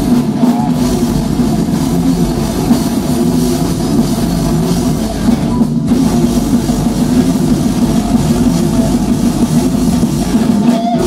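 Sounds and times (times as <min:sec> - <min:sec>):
distorted electric guitars: 0:00.0 - 0:11.0
drum kit: 0:00.0 - 0:11.0.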